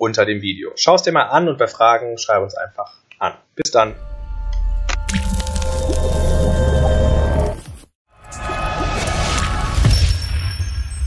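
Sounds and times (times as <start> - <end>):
deep bass drone music: 3.9 - 7.6
liquid drip and splat: 5.1 - 6.0.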